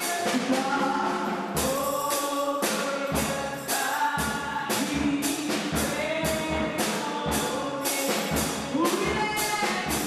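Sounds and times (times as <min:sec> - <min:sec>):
amplified band accompaniment: 0:00.0 - 0:10.0
women singing gospel song: 0:00.0 - 0:10.0.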